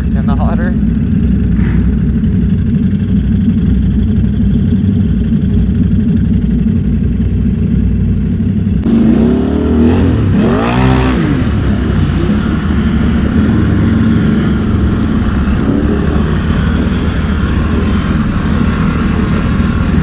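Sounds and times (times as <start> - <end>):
atv engine revving: 0.0 - 20.0
atv engines idling: 0.0 - 20.0.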